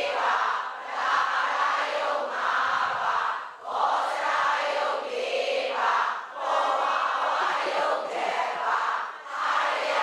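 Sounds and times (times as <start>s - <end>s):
many voices sounding together: 0.0s - 10.0s.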